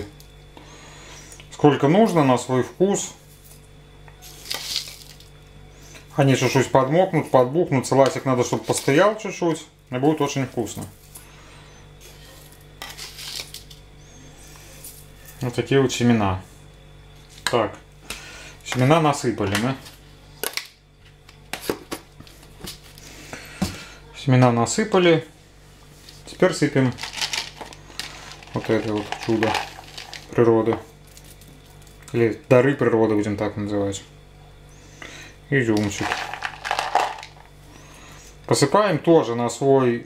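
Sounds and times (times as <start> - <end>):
steady low hum: 0.0 - 40.0
spoon scooping dry seeds: 4.2 - 5.3, 27.0 - 30.4, 35.8 - 37.4.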